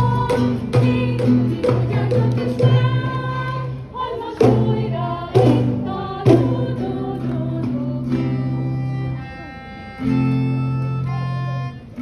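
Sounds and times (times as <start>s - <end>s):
instrumental accompaniment: 0.0s - 12.0s
strong accented chords: 0.0s - 12.0s.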